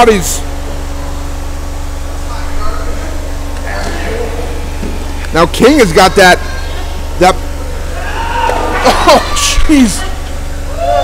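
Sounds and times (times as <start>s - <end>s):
steady low hum: 0.0s - 11.0s
faint indistinct voices: 0.6s - 10.8s.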